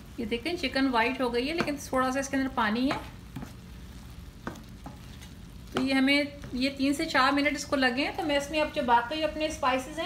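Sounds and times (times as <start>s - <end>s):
chicken sizzling in a pan: 0.0s - 9.1s
spatula knocking against pan: 4.4s - 5.0s.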